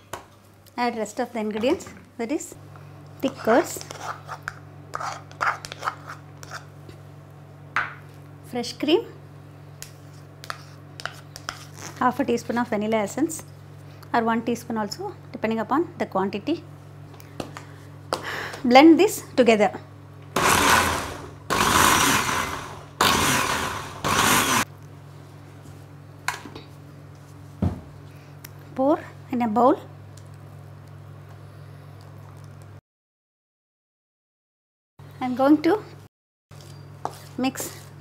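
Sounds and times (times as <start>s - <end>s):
mixer grinder motor whirring: 20.3s - 24.7s.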